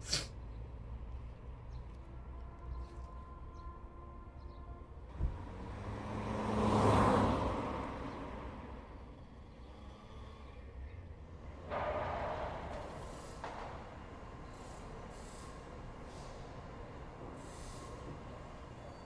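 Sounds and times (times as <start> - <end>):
car passing by: 5.2 - 10.6.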